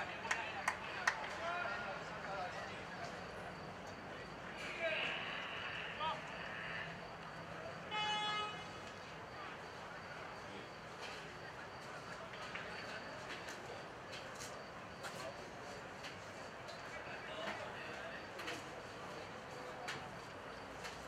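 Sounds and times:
distant players calling: 0.0 - 3.0, 3.6 - 8.8.

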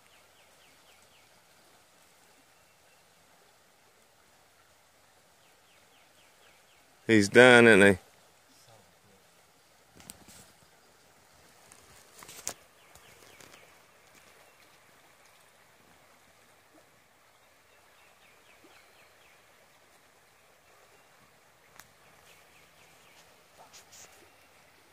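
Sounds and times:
creek murmuring: 0.0 - 24.9.

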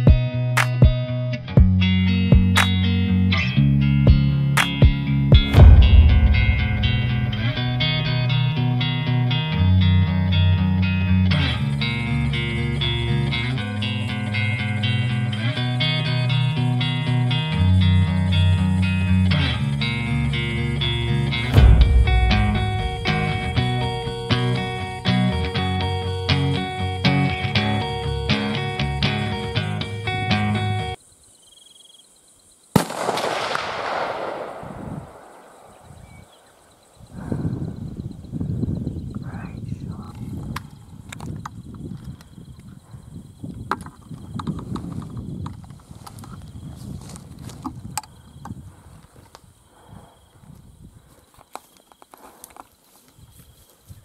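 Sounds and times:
guitar background music: 0.0 - 31.0
rifle shot with rolling echo: 5.5 - 8.2, 32.8 - 36.4.

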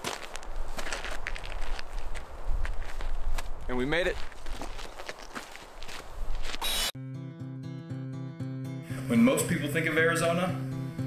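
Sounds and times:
footsteps on dirt: 0.0 - 6.9
background music with held notes: 7.0 - 11.0.

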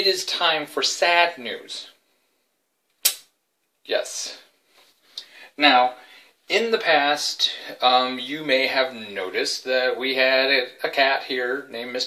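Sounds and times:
sharp click: 2.9 - 3.3.

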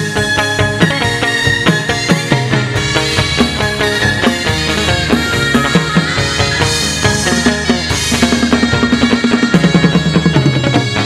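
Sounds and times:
fast drum beat: 0.0 - 11.0
plucked lute melody: 0.4 - 9.3.

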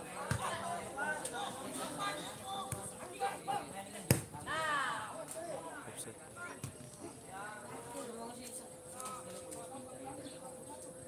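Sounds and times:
ball kicked thud: 4.1 - 4.3.

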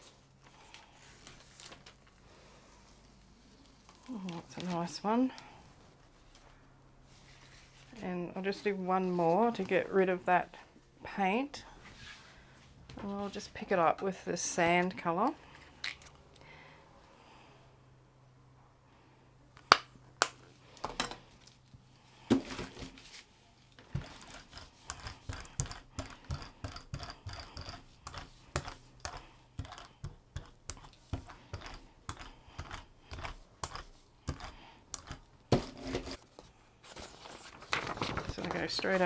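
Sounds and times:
brayer rolling through wet paint: 23.8 - 36.2.

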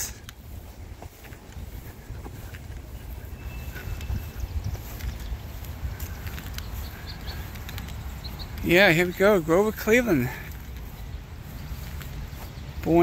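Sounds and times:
footsteps on grass: 0.0 - 13.0
faint ticks: 5.0 - 8.7.

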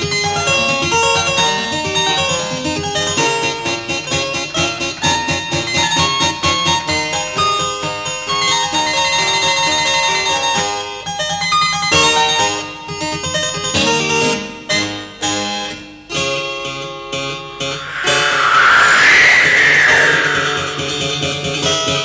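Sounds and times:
loud whooshing sound effect: 17.8 - 21.5.

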